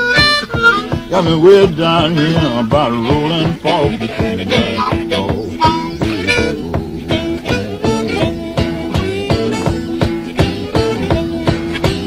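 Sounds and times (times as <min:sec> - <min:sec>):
harmonica holding notes: 0:00.0 - 0:12.0
rhythmic electric guitar: 0:00.0 - 0:12.0.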